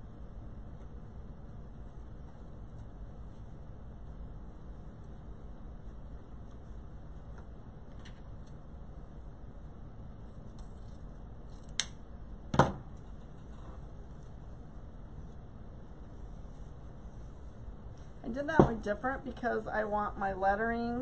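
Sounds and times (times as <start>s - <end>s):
low background hum: 0.0s - 21.0s.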